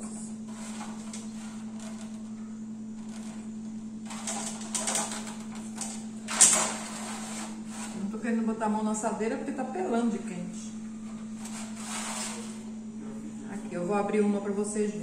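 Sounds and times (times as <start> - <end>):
steady low hum: 0.0 - 15.0
spatula scraping a metal tray: 0.5 - 2.2, 6.2 - 8.2, 11.3 - 12.7.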